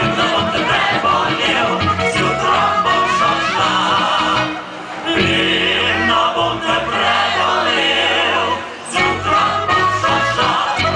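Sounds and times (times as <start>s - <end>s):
button accordion: 0.0s - 10.9s
double bass: 0.0s - 10.9s
guitar: 0.0s - 10.9s
male voices singing in harmony: 0.0s - 10.9s.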